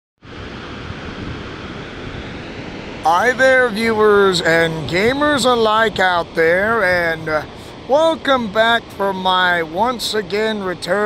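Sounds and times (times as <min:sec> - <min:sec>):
waterfall rushing: 0:00.2 - 0:11.0
wind buffeting microphone: 0:00.2 - 0:11.0.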